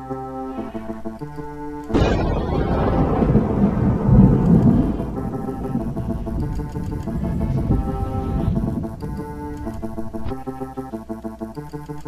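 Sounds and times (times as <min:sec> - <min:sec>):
soft music: 0:00.0 - 0:02.0, 0:02.8 - 0:12.0
rain: 0:01.9 - 0:10.2
thunder crack and rumble: 0:01.9 - 0:10.4.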